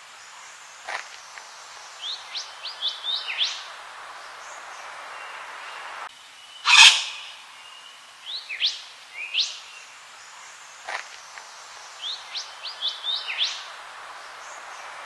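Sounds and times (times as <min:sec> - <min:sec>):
bird calling: 0:06.6 - 0:07.9.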